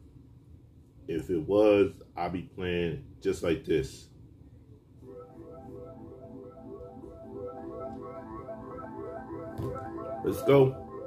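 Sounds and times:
music with held notes: 5.0 - 11.0.

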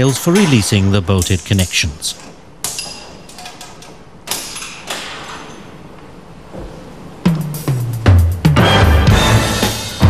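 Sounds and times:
metal knocks and clanks echoing: 0.0 - 5.9.

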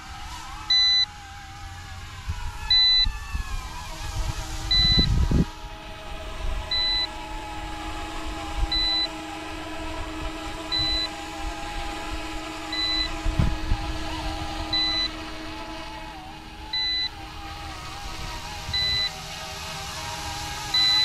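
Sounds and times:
wind on microphone: 0.0 - 20.8
model helicopter rotor whine: 0.0 - 21.0
short electronic beep: 4.7 - 5.1.

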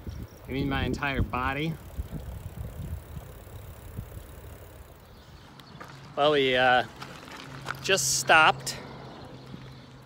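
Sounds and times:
wind rumble on microphone: 0.0 - 5.5
bicycle rolling on asphalt: 0.0 - 10.0.

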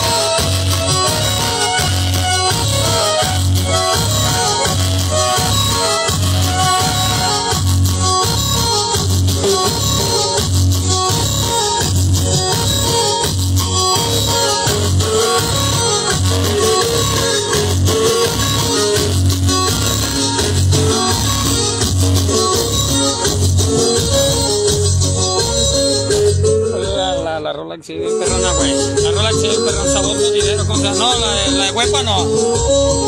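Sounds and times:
strong bass beat: 0.0 - 27.3, 28.2 - 33.0
loud music through speakers: 0.0 - 33.0.

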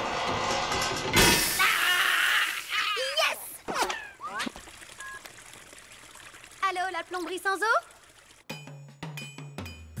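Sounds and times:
cartoon water gushing and splashing: 1.4 - 8.5.

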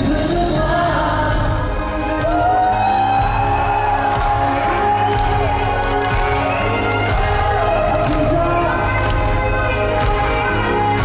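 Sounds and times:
band with steady bass beat: 0.0 - 11.0
crowd noise: 0.0 - 11.0
person singing: 0.0 - 11.0.

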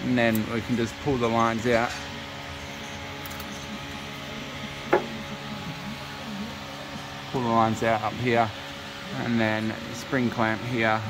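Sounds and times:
steady workshop hum: 0.0 - 11.0.

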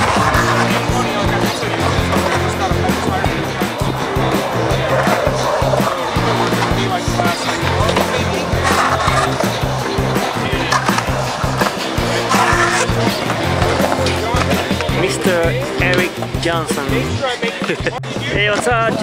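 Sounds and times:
music playing: 0.0 - 19.0
skateboard wheels rolling on concrete: 0.0 - 19.0.

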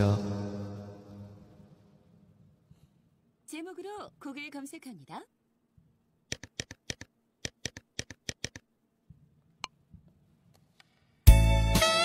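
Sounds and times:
rapid sharp clicks: 6.3 - 8.7.

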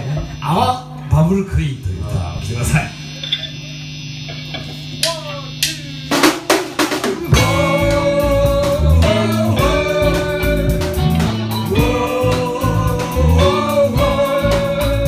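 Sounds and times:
drum hits: 6.1 - 15.0
live rock band playing: 6.1 - 15.0
steady low tone: 7.2 - 15.0.

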